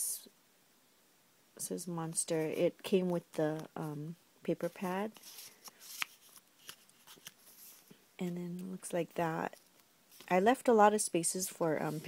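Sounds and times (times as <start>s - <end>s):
paper rustling: 4.6s - 8.0s.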